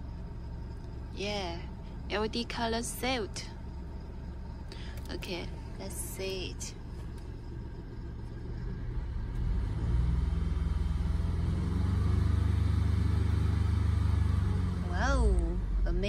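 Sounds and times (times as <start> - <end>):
vehicle engine rumble: 0.0 - 16.0.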